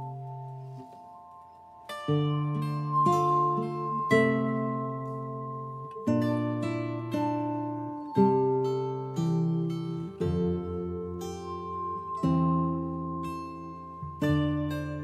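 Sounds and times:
slow plucked instrumental music: 0.0s - 15.0s.

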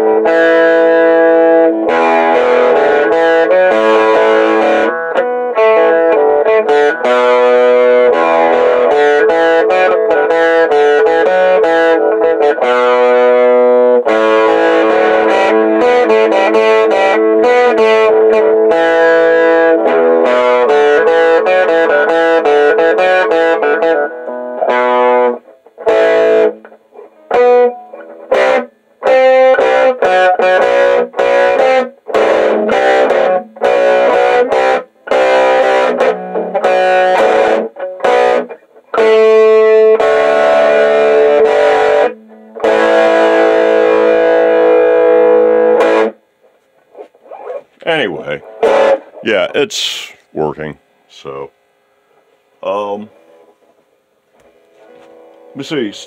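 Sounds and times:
short choppy guitar chords: 0.0s - 46.2s, 47.0s - 51.5s
ringing electric guitar chords: 0.0s - 46.3s, 47.0s - 51.4s.

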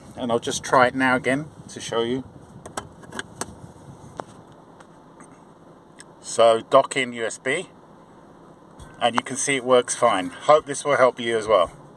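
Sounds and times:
car cabin noise: 0.0s - 11.9s.

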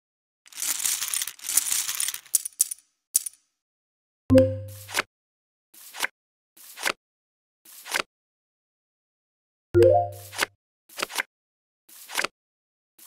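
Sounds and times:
chips clinking: 0.5s - 3.4s
card swish: 12.0s - 12.3s.

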